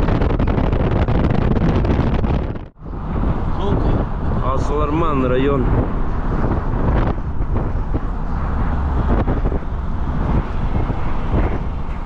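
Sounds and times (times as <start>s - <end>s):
car road noise and engine rumble: 0.0s - 12.0s
wind buffeting microphone: 0.0s - 12.0s.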